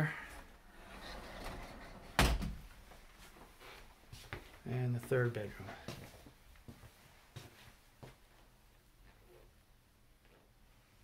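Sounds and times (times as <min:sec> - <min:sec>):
closet door closing thump: 0:02.1 - 0:02.7.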